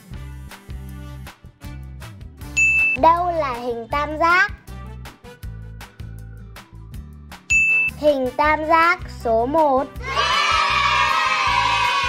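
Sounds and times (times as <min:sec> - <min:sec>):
background music with beat: 0:00.0 - 0:03.8, 0:04.6 - 0:08.4
bright ding: 0:02.6 - 0:03.0, 0:07.5 - 0:08.0.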